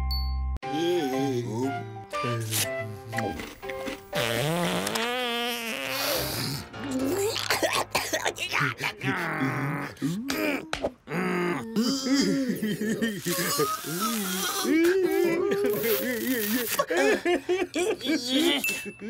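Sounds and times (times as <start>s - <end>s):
background music: 0.0s - 15.7s
comic fart sound effect: 3.8s - 7.5s
gibberish vocal noises: 4.1s - 16.9s
cartoon character groans: 8.5s - 16.4s.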